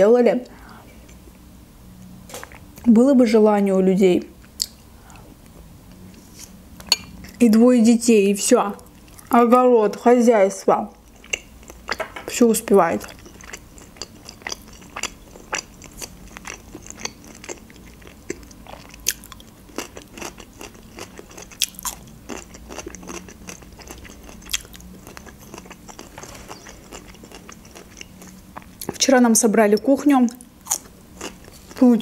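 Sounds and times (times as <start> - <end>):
cucumber crunching: 13.1 - 29.0.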